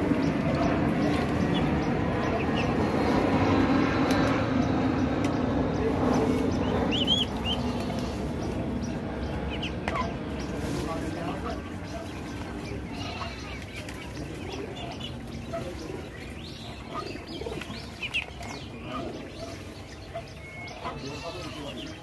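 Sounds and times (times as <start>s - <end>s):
background murmur: 0.0s - 22.0s
ducklings peeping: 0.0s - 22.0s.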